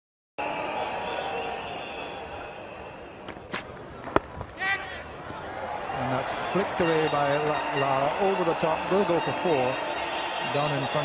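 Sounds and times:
stadium background noise: 0.4 - 11.0
cricket bat hitting ball: 3.3 - 4.6.

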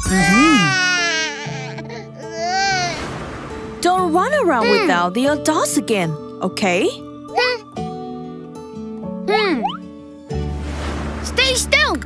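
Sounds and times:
cartoon child crying: 0.0 - 3.0
light background music: 0.0 - 12.0.

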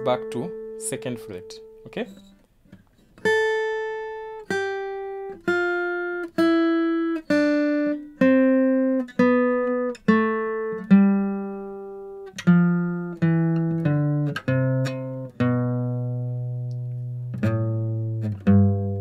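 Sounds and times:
acoustic guitar picking scale notes: 0.0 - 19.0.

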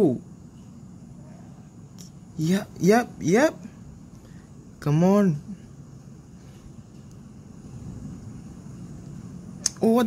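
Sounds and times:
low background rumble: 0.2 - 10.0.

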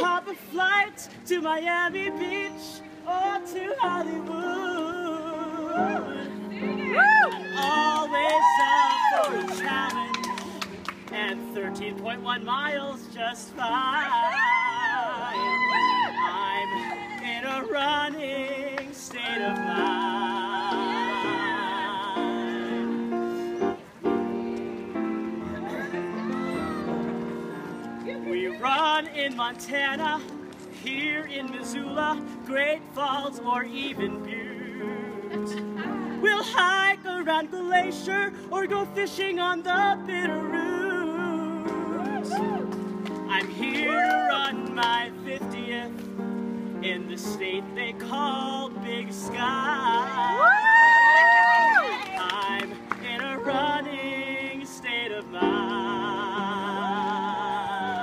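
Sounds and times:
grand piano chords: 0.0 - 58.0
person singing slow song: 0.0 - 58.0.

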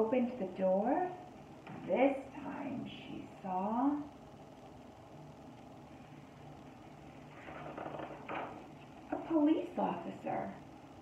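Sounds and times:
faint low hum: 0.0 - 11.0
book page turning: 7.3 - 8.6.

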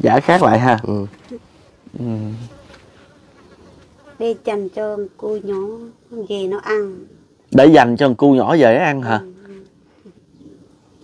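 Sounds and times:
faint insect buzz: 0.2 - 11.0
person humming mm: 1.9 - 2.6.

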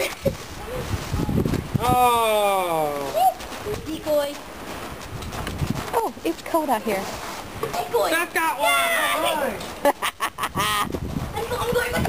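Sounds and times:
footsteps crunching on gravel: 2.8 - 7.9.

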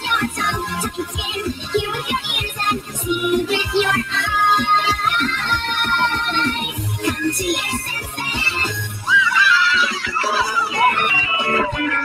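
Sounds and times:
high-pitched cartoon singing voice: 0.0 - 12.0.

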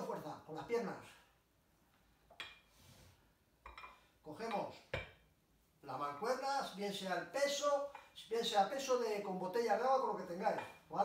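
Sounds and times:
dumbbell plates clinking: 3.6 - 5.2.

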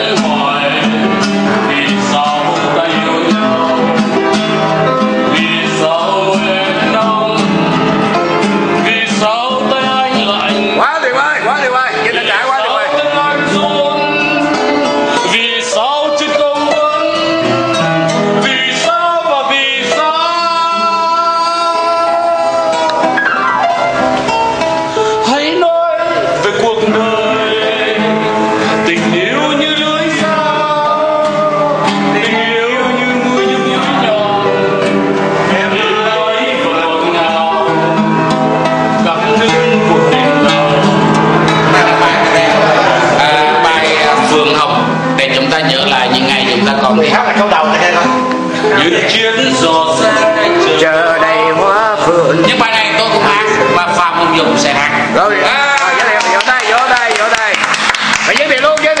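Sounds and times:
man singing slow song: 0.0 - 10.8, 12.2 - 23.2, 25.2 - 55.1
classical guitars playing: 0.0 - 59.0
instrumental accompaniment: 0.0 - 59.0.

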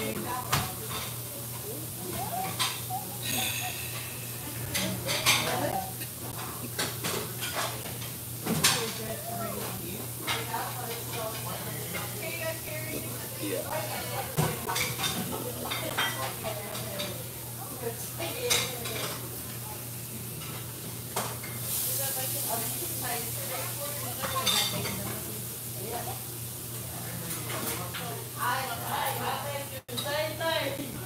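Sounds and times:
dishes and cutlery clinking: 0.0 - 17.2, 18.3 - 19.6, 23.9 - 25.2.

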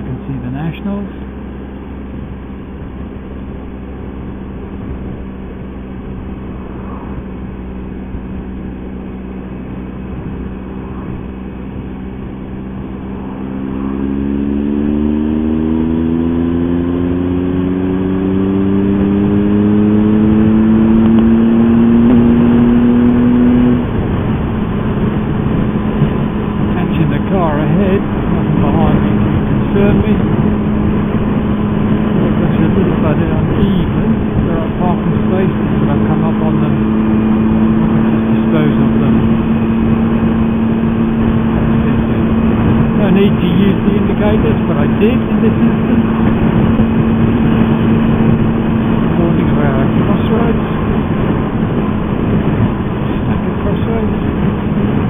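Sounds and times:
motorcycle engine: 0.0 - 55.0
road and wind noise: 0.0 - 55.0.

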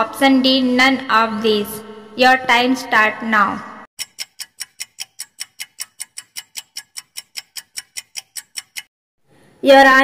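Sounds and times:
rapid clock ticks: 4.0 - 8.9.

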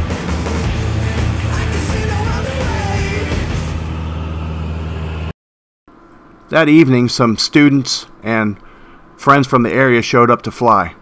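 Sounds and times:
background music: 0.0 - 4.5
airplane engine and propeller drone: 0.6 - 5.4.

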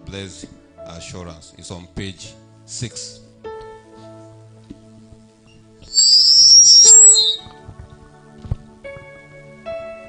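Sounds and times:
loud high-pitched whine: 5.9 - 7.5.

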